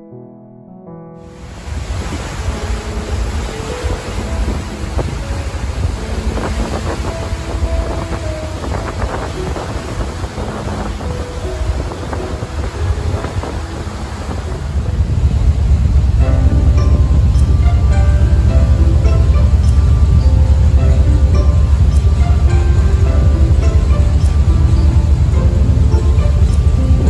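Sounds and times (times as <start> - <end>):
sea rushing along hull: 1.2 - 27.0
wind gusting over microphone: 1.3 - 27.0
faint background music: 1.4 - 27.0.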